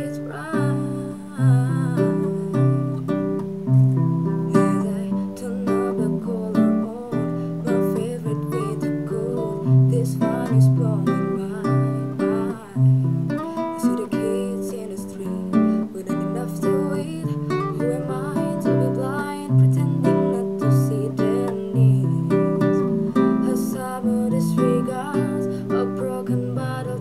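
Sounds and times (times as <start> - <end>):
acoustic guitar strumming chords: 0.0 - 27.0.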